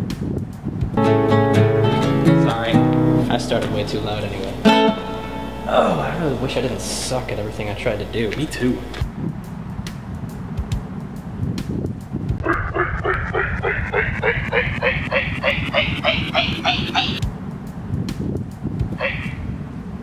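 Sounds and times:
falling electronic blip: 12.4 - 17.2
megaphone rising doop tones: 12.4 - 17.2.

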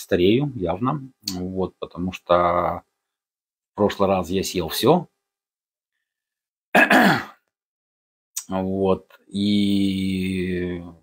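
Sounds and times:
man clearing his throat: 6.7 - 7.4.

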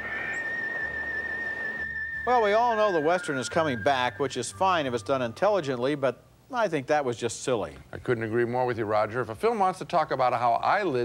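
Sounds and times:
high whistled note: 0.0 - 6.1.

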